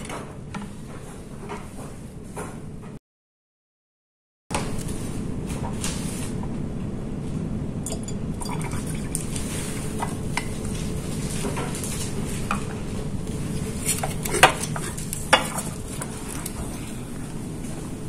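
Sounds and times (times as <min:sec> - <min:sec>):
steady low hum: 0:04.5 - 0:18.0.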